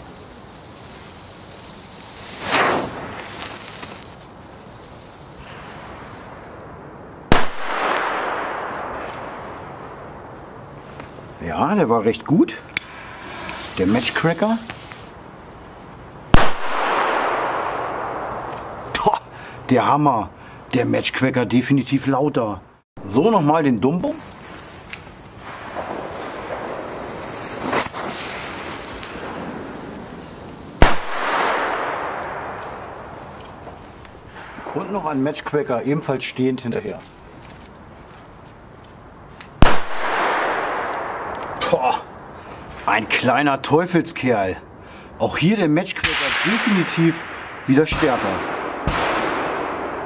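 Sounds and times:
firecracker bang: 1.8 - 6.6, 7.3 - 10.0, 16.3 - 18.9, 24.0 - 35.2, 39.6 - 42.1, 46.0 - 50.0.

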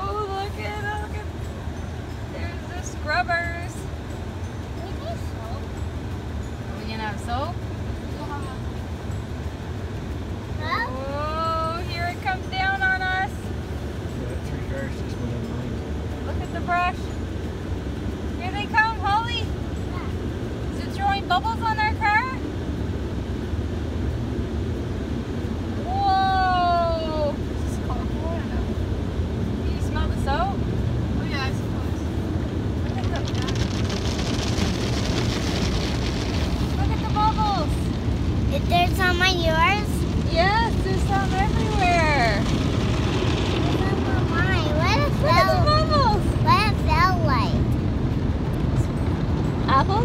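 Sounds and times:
car wash brushes rumbling: 0.0 - 50.0.

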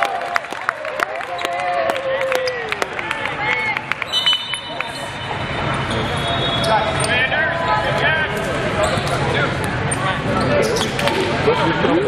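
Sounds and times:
many voices: 0.9 - 12.0
shoes squeaking on court: 8.8 - 9.3, 9.9 - 11.3.

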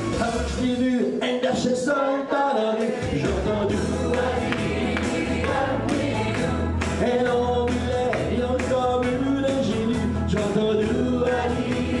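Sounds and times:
band accompaniment: 0.0 - 1.7, 2.8 - 12.0
live pop singing: 0.0 - 12.0
pulsing bass line: 3.2 - 12.0.

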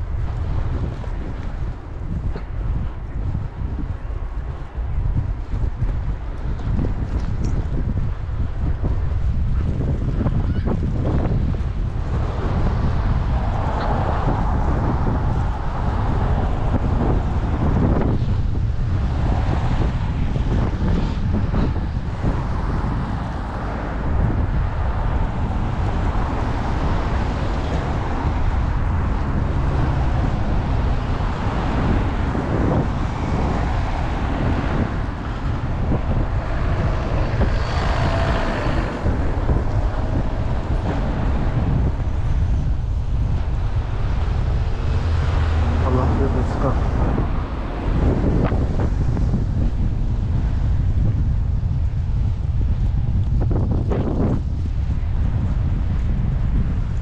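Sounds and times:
wind buffeting microphone: 0.0 - 57.0
cars passing on slushy road: 11.2 - 57.0.

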